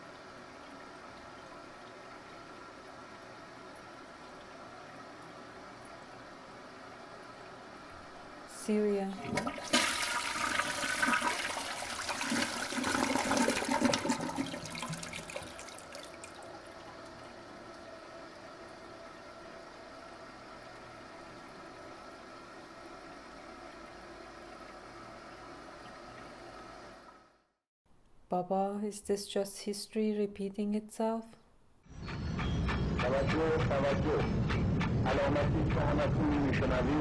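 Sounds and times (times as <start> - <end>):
toilet flushing: 9.1 - 19.8.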